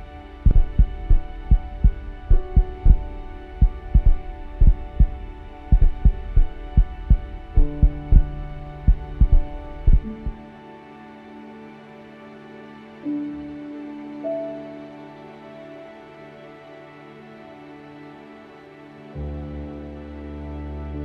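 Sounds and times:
low drone: 0.0 - 21.0
heartbeat double thumps: 0.4 - 10.4.

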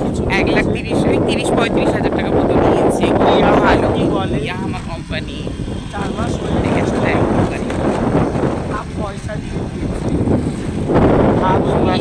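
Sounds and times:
person talking: 0.0 - 10.0, 11.3 - 12.0
wind rumbling on microphone: 0.0 - 12.0.

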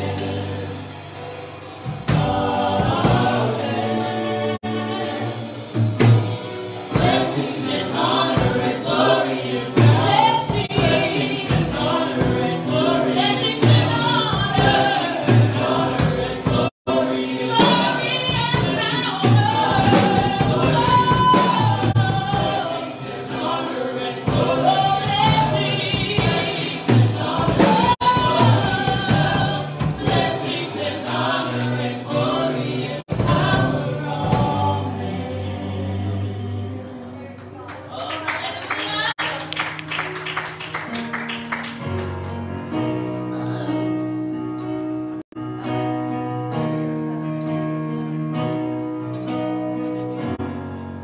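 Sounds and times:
drums: 0.0 - 36.7, 48.4 - 51.0
keyboard: 0.0 - 37.9, 39.2 - 51.0
gospel choir singing: 0.0 - 39.2.

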